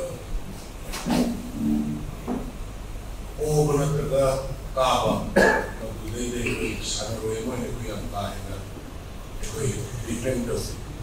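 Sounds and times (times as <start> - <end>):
man speaking into microphones: 3.4 - 8.8, 9.4 - 11.0.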